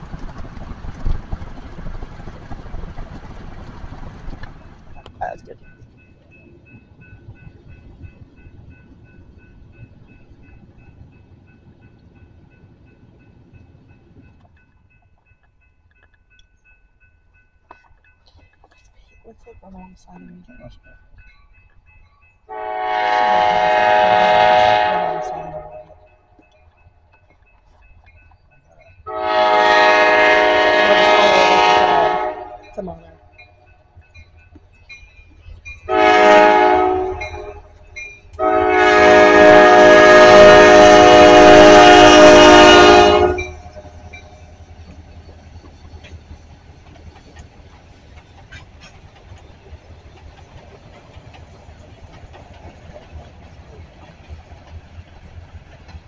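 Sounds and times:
freight train rumbling: 0.0s - 56.0s
locomotive air horn blasts: 22.5s - 26.0s, 29.1s - 32.6s, 35.9s - 37.7s, 38.4s - 44.0s.

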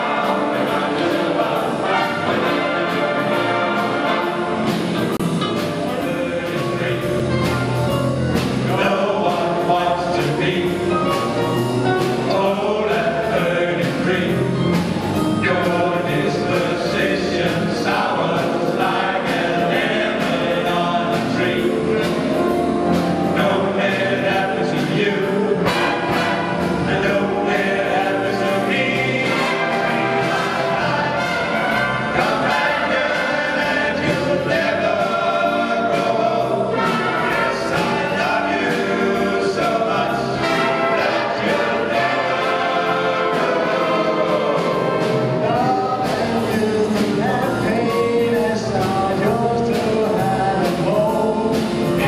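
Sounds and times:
male vocal group singing: 0.0s - 7.7s, 8.6s - 52.0s
big band accompaniment: 0.0s - 52.0s
drum and cymbal beat: 0.0s - 52.0s.

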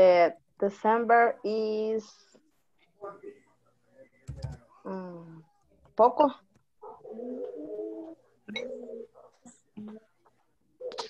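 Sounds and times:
dove cooing: 6.8s - 9.3s.

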